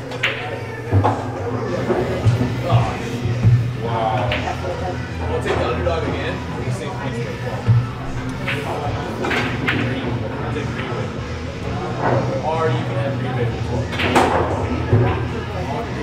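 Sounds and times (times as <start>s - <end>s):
pool cue striking balls: 0.0s - 6.2s, 7.4s - 12.4s, 13.6s - 16.0s
background music: 0.0s - 16.0s.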